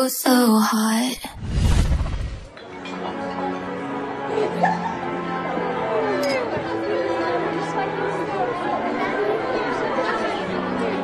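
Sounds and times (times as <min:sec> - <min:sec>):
background music with low notes: 0:02.5 - 0:11.0
chatter of voices: 0:04.2 - 0:11.0.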